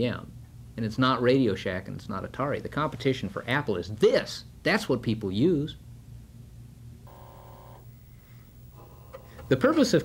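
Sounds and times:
low electrical hum: 0.0 - 10.0
faint electronic tone: 7.1 - 10.0.

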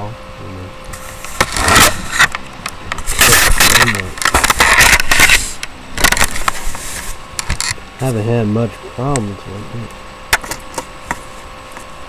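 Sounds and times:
microphone handling noise: 0.9 - 7.8.

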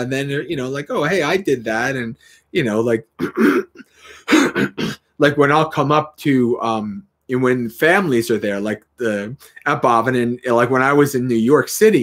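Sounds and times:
man clearing his throat: 3.2 - 5.1.

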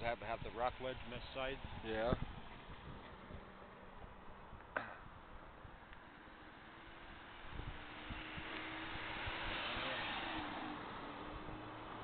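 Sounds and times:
vehicle driving past: 6.1 - 12.0.

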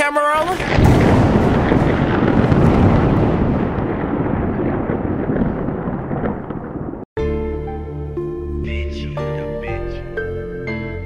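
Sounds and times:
explosion boom with rumbling tail: 0.5 - 7.1.

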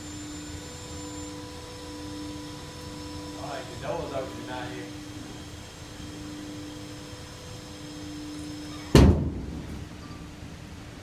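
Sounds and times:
bale feeder machine hum: 0.0 - 11.0
loud heavy bang: 8.9 - 9.9.

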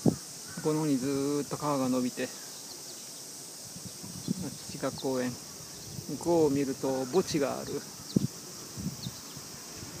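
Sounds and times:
cicadas droning: 0.0 - 10.0.

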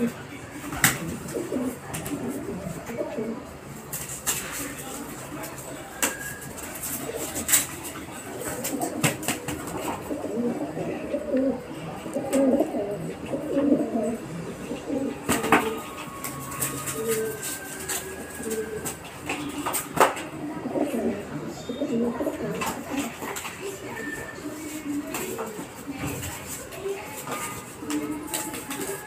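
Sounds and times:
pigeons cooing: 0.0 - 3.9, 5.6 - 26.0.

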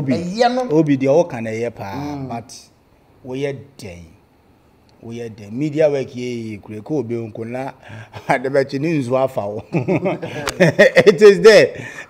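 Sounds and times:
men talking: 0.0 - 4.2, 5.0 - 12.0
men laughing: 9.5 - 12.0.

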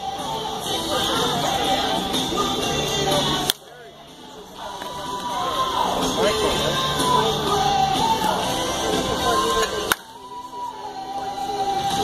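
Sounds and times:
music with voices: 0.0 - 12.0.

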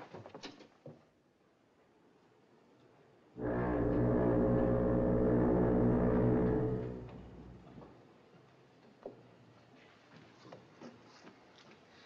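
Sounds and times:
ship's foghorn blast: 3.4 - 7.6.

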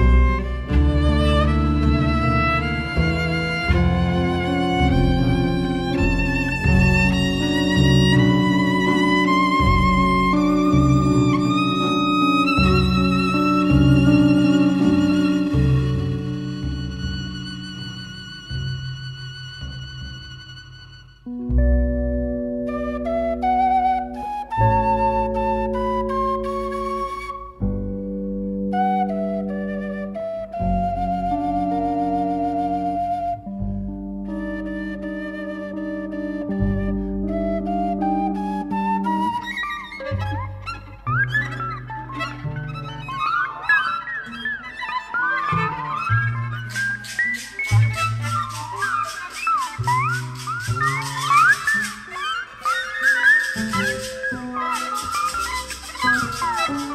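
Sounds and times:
held chords and bass notes: 0.0 - 20.5, 21.1 - 23.4
quick gliding melodic lines: 0.0 - 27.6, 31.4 - 56.9
flute melody: 0.0 - 56.9
fast bright rhythmic pattern: 46.6 - 56.9.

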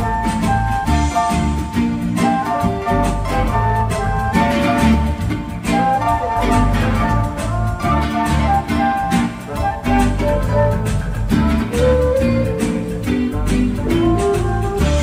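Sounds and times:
instrumental band music: 0.0 - 15.0.

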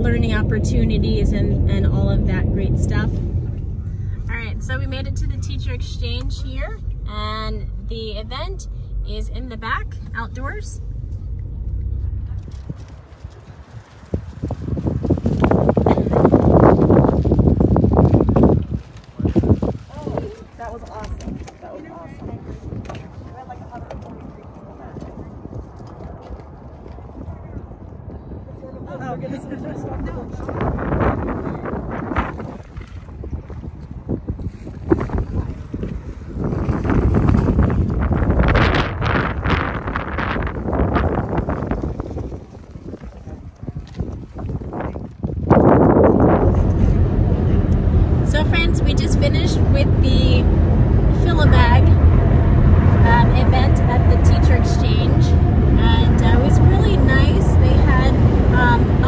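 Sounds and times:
car interior rumble: 0.0 - 28.5, 29.7 - 59.0
wind buffeting microphone: 0.0 - 59.0.

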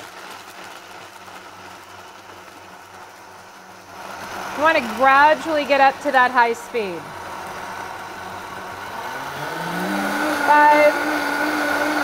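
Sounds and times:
blender running: 0.0 - 12.0.

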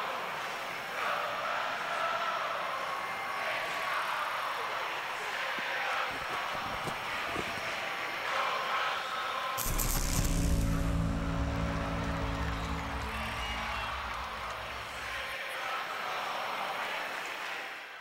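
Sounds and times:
deep musical chord with shimmer: 9.6 - 15.3
rushing noise: 9.6 - 15.4.

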